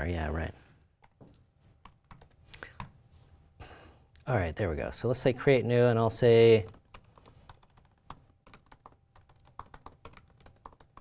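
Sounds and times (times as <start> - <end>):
typing on computer keyboard: 1.8 - 2.9, 6.6 - 11.0.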